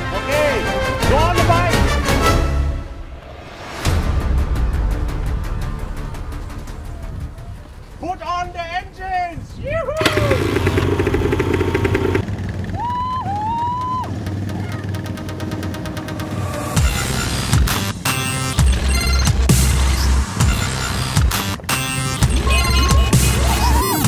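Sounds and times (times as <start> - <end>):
riders whooping: 5.6 - 7.9, 9.6 - 16.7, 22.2 - 24.0
quad bike engines revving: 10.0 - 18.2, 22.2 - 24.0
rhythmic background music: 14.9 - 24.0.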